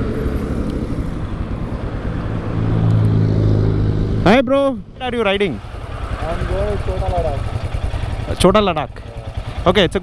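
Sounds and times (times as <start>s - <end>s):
motorcycle engine at low revs: 0.0s - 10.0s.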